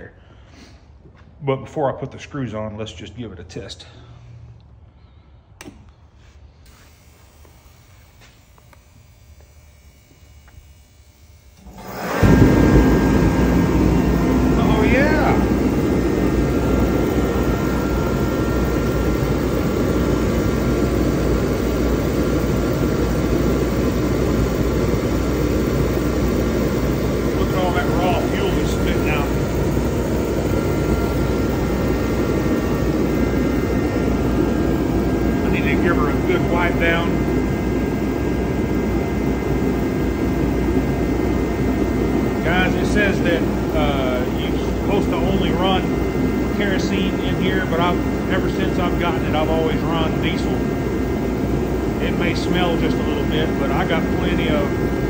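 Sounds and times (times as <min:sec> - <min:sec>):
heater fan and burner roaring: 0:00.0 - 0:55.0
heater switch clicks: 0:05.6 - 0:05.9.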